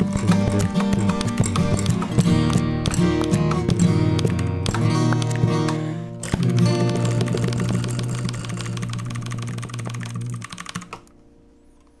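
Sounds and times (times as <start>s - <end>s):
acoustic guitar chord ringing: 0.0s - 10.4s
computer keyboard clicking: 0.0s - 11.1s.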